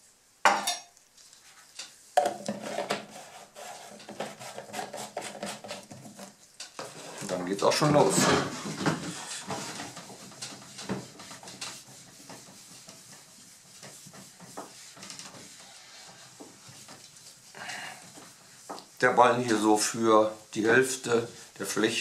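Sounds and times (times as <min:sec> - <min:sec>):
polishing pad swishing on wood: 0:01.4 - 0:22.0.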